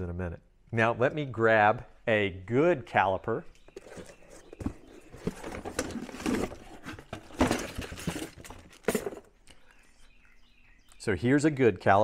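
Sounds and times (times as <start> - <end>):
rummaging rustling and clatter: 3.7 - 9.4.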